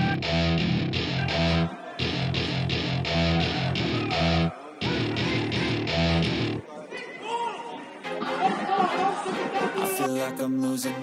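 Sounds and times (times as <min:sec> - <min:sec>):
loud guitar-driven song: 0:00.0 - 0:06.6
players shouting and chattering: 0:00.0 - 0:10.1.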